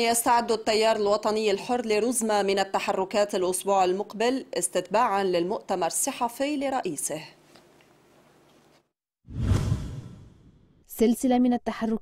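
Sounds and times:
deep whoosh transition effect: 9.3 - 10.5.

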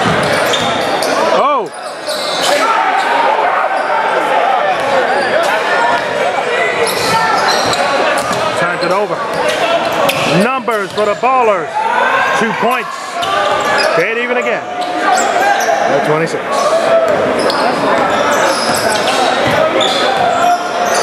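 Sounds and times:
voices echoing in a hall: 0.0 - 21.0.

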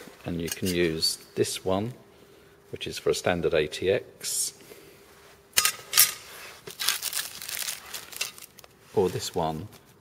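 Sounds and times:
loud handling noises: 5.5 - 9.9
plastic film crinkling: 6.3 - 10.0.

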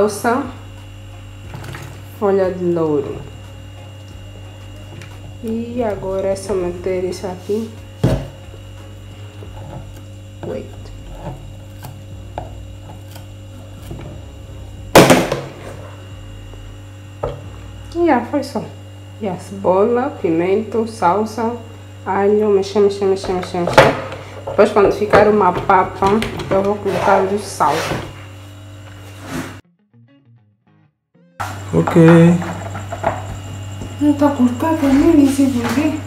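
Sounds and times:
faint steady whine: 0.0 - 29.6, 31.4 - 36.0
steady electrical hum: 0.0 - 29.6, 31.4 - 36.0.

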